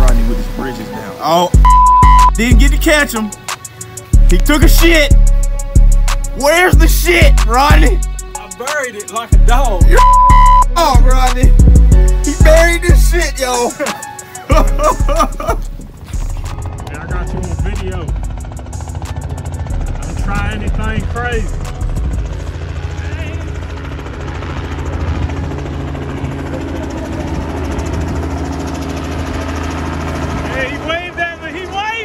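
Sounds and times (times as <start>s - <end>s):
helicopter flying overhead: 1.6s - 32.0s.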